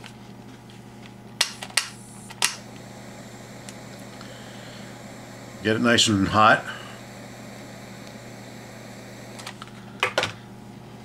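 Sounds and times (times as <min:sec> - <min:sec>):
steady low hum: 0:00.0 - 0:11.0
butane torch igniter clicks: 0:01.4 - 0:10.4.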